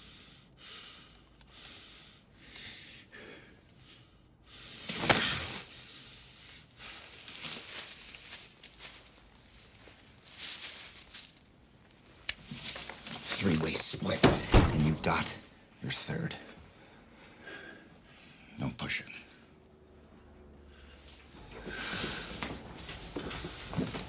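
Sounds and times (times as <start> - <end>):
soft breaths: 0.0 - 11.4, 15.4 - 24.0
rustles of movement: 4.8 - 14.2, 20.8 - 24.0.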